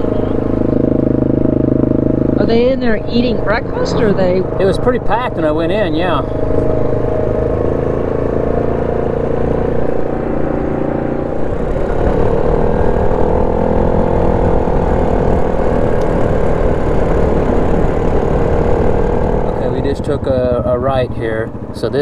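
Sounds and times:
atv engine running: 0:00.0 - 0:22.0.

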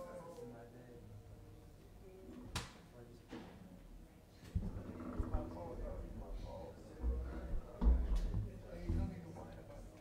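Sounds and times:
low chatter of people: 0:00.0 - 0:10.0.

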